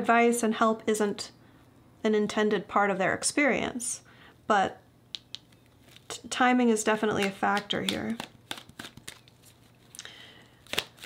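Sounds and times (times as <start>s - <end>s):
cards being shuffled: 5.2s - 6.2s, 7.0s - 10.0s, 10.6s - 11.0s.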